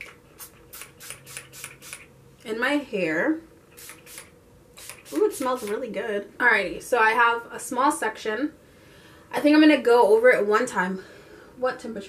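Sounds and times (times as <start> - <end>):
short hissing sprays: 0.4 - 2.1, 3.8 - 5.8.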